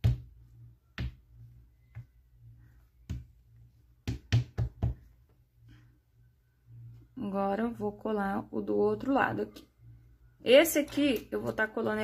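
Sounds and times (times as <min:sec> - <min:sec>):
hands patting on a tabletop: 0:00.0 - 0:02.2, 0:03.0 - 0:03.4, 0:04.0 - 0:05.4.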